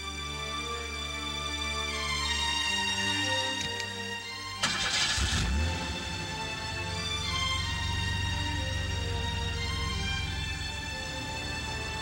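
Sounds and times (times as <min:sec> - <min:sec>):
background music: 0:00.0 - 0:12.0
car engine starting: 0:04.5 - 0:12.0.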